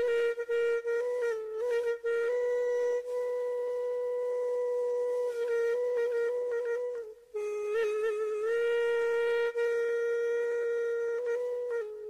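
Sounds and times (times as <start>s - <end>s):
flute-like long steady note: 0.0s - 12.0s.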